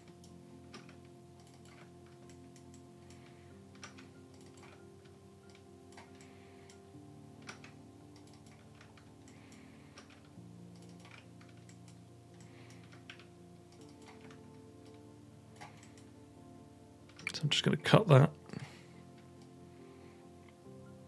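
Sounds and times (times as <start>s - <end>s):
low steady hum: 0.0s - 21.0s
mouse and keyboard clicking: 3.8s - 4.8s, 7.4s - 10.2s, 10.8s - 15.0s.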